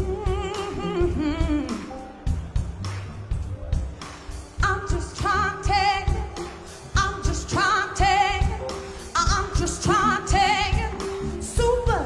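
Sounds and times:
woman singing with vibrato: 0.0s - 1.9s, 4.6s - 12.0s
bass guitar: 0.0s - 12.0s
drums: 0.0s - 12.0s.

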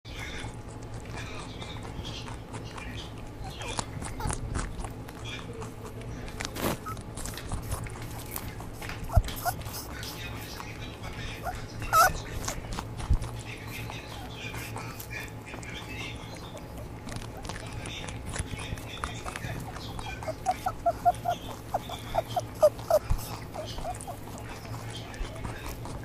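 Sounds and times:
rabbits chewing grass: 0.1s - 26.0s.

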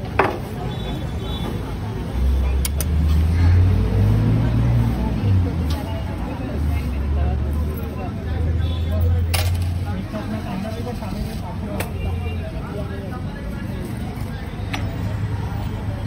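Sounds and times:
vehicle engine rumble: 0.0s - 16.0s.

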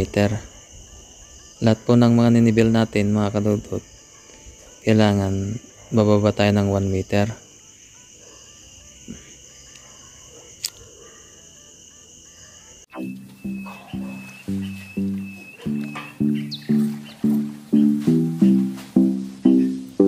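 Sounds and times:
insects trilling: 0.0s - 20.0s
background music with pitched beat: 12.9s - 20.0s.

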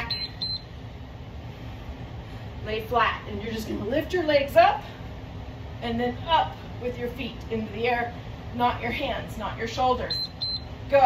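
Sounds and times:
low steady background rumble: 0.0s - 11.0s
timer short high beeps: 10.1s - 10.7s.

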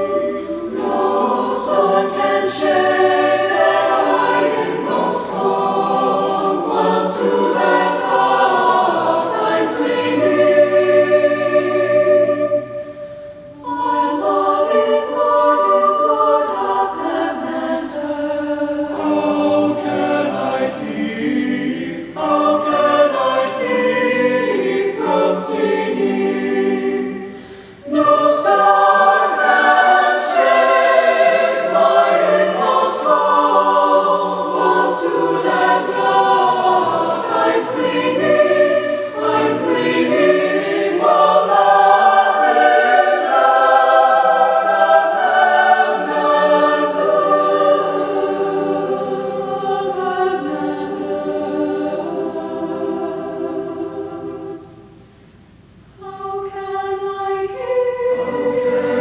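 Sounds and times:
choir singing: 0.0s - 59.0s.

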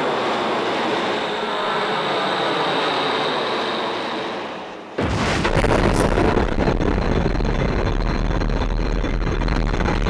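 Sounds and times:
explosion rumbling roar: 5.0s - 10.0s.

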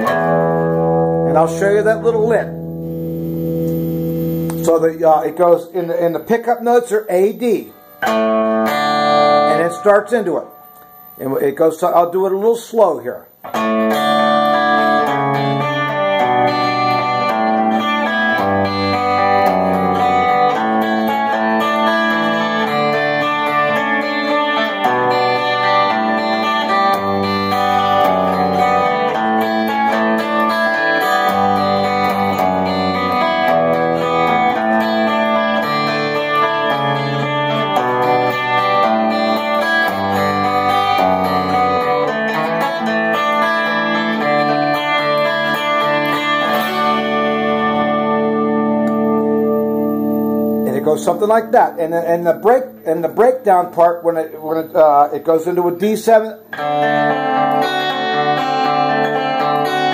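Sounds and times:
finger-picked electric guitar: 0.0s - 59.9s.

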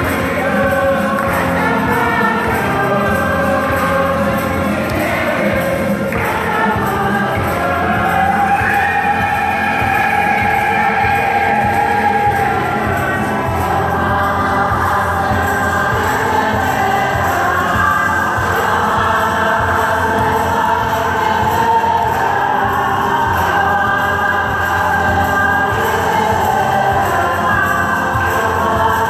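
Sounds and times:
choir singing: 0.0s - 29.0s.

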